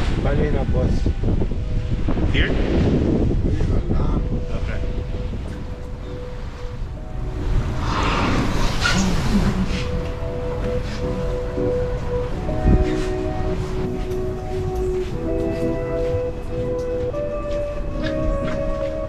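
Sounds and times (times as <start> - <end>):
music with long held notes: 0.0 - 19.0
water washing along hull: 0.0 - 19.0
wind on microphone: 0.0 - 19.0.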